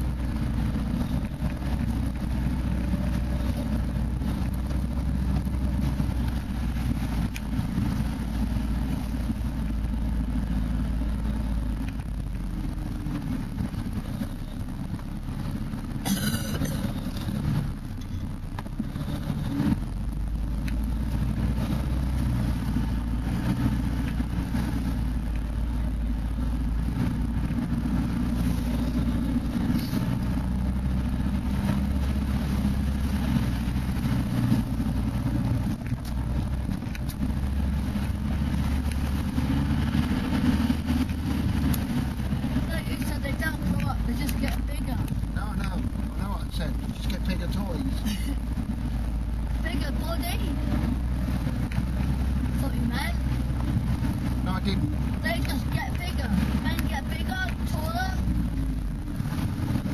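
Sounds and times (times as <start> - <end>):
off-road engine rumbling: 0.0 - 59.9.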